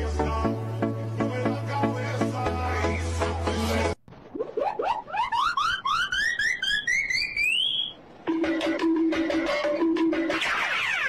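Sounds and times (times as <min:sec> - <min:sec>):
rising electronic chirps: 0:04.2 - 0:08.0
pulsing beeping synth tones: 0:04.4 - 0:08.0.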